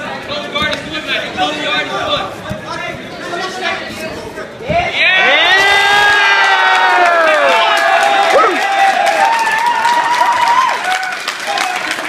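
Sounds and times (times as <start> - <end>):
crowd cheering and shouting: 4.7 - 12.0.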